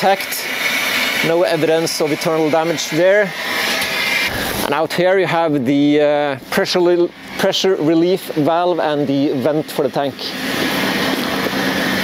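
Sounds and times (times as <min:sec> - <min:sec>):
aircraft machinery rushing hiss: 0:00.0 - 0:12.0.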